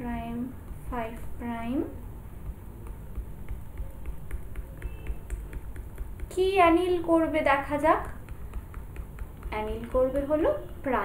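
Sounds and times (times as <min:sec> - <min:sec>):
stylus tapping on graphics tablet: 0:00.1 - 0:11.0.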